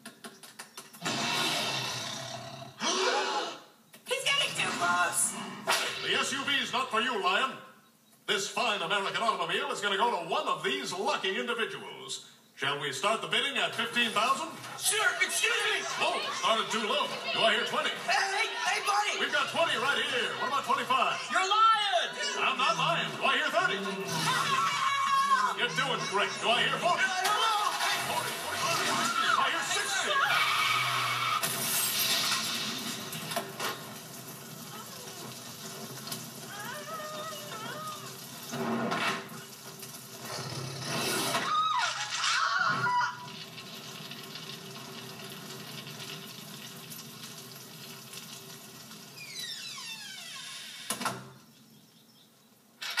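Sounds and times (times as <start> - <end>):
cartoon voices and shouts: 2.8 - 6.7, 14.4 - 31.0, 36.5 - 38.2, 41.4 - 43.3.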